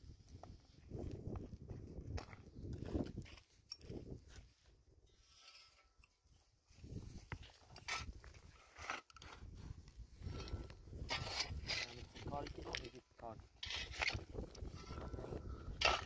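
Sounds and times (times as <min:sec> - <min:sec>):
digging in stony soil: 0:02.5 - 0:16.0.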